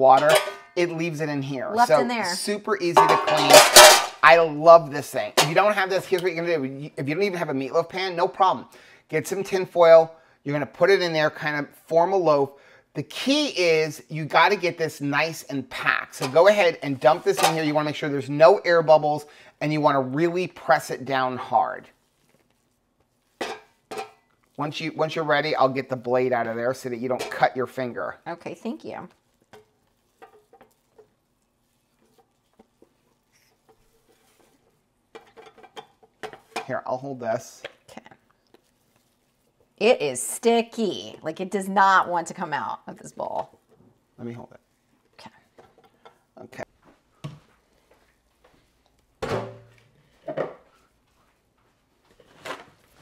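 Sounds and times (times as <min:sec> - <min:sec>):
scraping food from bowl: 0:29.4 - 0:34.8.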